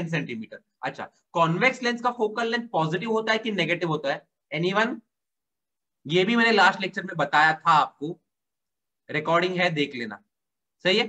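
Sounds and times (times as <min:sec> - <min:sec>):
man talking: 0:00.0 - 0:05.0, 0:10.8 - 0:11.0.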